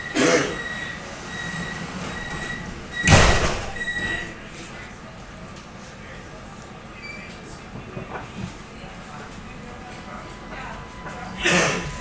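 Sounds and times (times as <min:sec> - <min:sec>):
high warning beeps: 0:00.0 - 0:04.3, 0:10.2 - 0:12.0
cough-like sound: 0:00.1 - 0:00.6, 0:11.4 - 0:12.0
metro doors thumping shut: 0:01.5 - 0:04.2.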